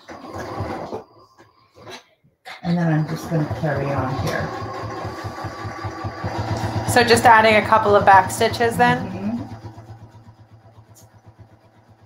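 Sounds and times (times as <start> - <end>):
sewing machine running: 0.0 - 1.0, 2.7 - 12.0.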